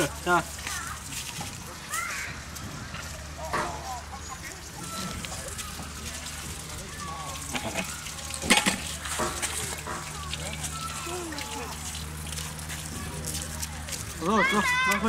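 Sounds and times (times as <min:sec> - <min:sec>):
outdoor playground background: 0:00.0 - 0:15.0
child's high vocal sounds: 0:01.9 - 0:02.4.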